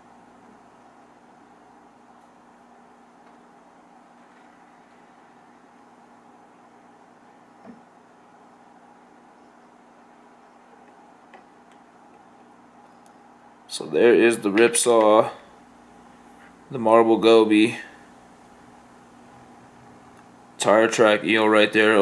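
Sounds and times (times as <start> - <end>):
aquarium equipment hum: 0.0 - 22.0.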